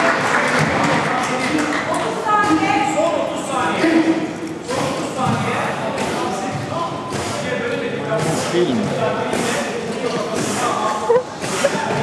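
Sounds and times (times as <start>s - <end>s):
people talking in echoing hall: 0.0s - 12.0s.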